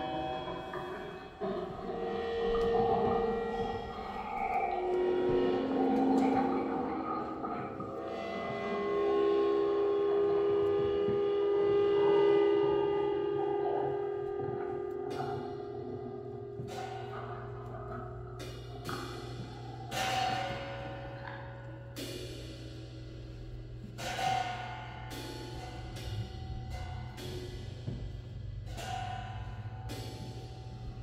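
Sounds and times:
synthesizer tones and drone: 0:00.0 - 0:17.8
metallic cymbal sounds: 0:00.0 - 0:31.0.

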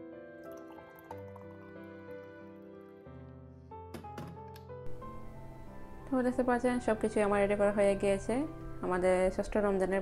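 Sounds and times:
background song: 0:00.0 - 0:07.6
drink pouring into a glass: 0:00.4 - 0:02.4.

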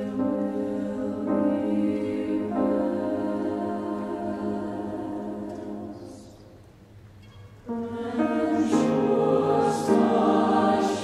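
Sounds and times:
choir holding a chord: 0:00.0 - 0:06.6, 0:07.7 - 0:11.0.

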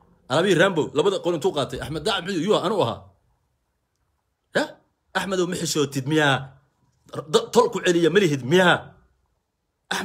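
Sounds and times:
man speaking: 0:00.3 - 0:03.2, 0:04.5 - 0:09.0.

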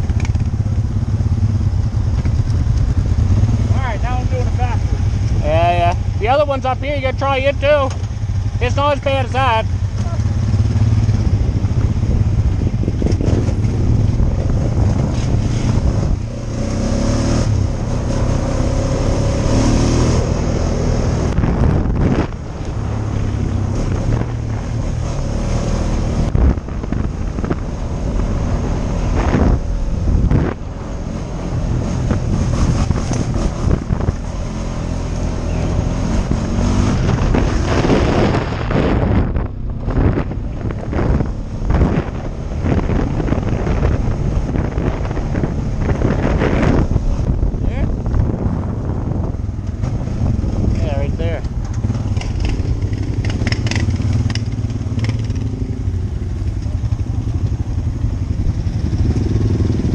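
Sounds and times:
atv engine running: 0:00.0 - 0:59.9
wind buffeting microphone: 0:00.0 - 0:59.9.

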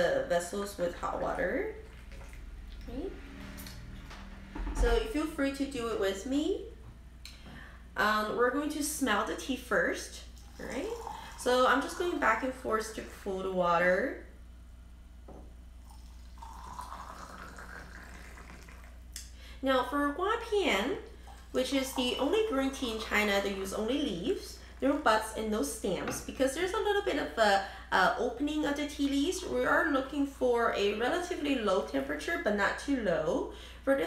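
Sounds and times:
water pouring into glass pitcher: 0:00.8 - 0:02.9, 0:10.2 - 0:12.5, 0:15.8 - 0:19.1, 0:21.1 - 0:24.2
faint rising tone: 0:02.8 - 0:04.6.

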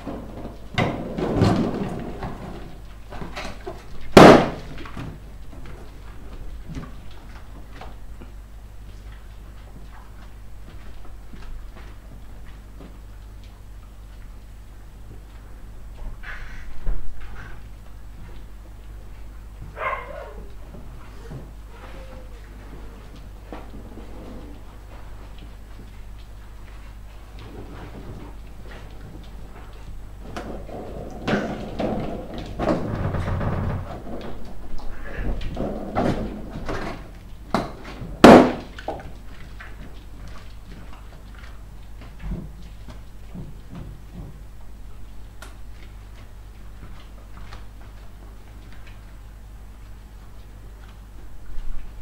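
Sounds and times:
balloons knocking and bumping: 0:04.1 - 0:04.7
balloon bursting bang: 0:04.2 - 0:04.6.

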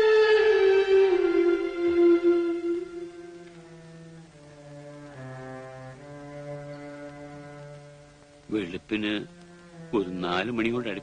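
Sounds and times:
slow brass-like chords: 0:00.0 - 0:08.4.

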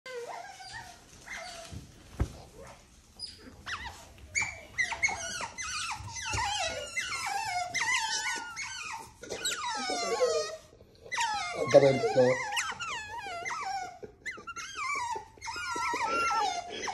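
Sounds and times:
otter whines and squeaks: 0:00.1 - 0:01.8, 0:02.5 - 0:16.9.

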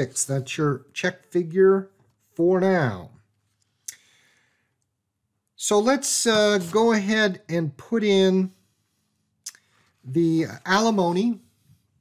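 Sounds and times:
soft breath: 0:03.6 - 0:04.8.

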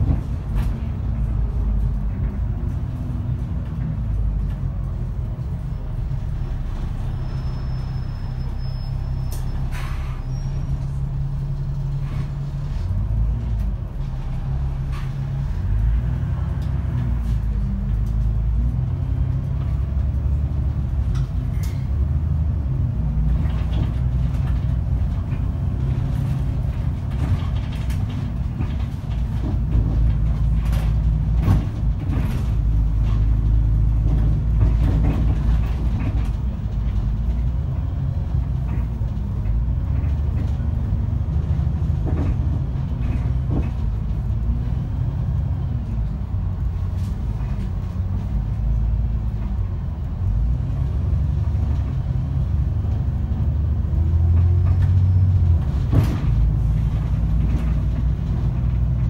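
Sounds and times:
bus engine drone: 0:00.0 - 0:59.0
body clicks and rattles: 0:23.2 - 0:59.0.

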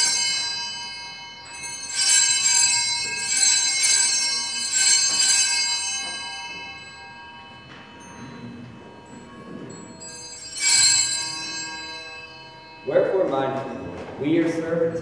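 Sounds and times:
altar bells ringing: 0:00.0 - 0:15.0.

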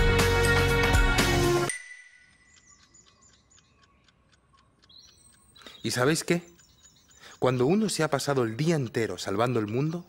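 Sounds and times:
birds chirping: 0:01.3 - 0:10.0
person speaking: 0:05.6 - 0:06.6, 0:07.3 - 0:10.0.

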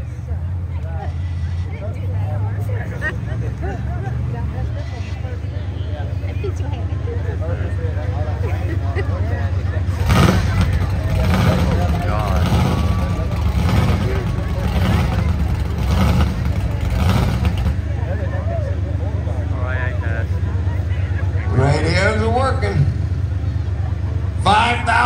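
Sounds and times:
truck engine revving and idling: 0:00.0 - 0:25.0.

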